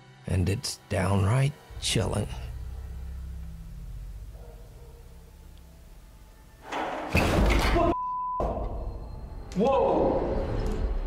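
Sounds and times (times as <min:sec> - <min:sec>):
low droning: 0:01.7 - 0:06.6.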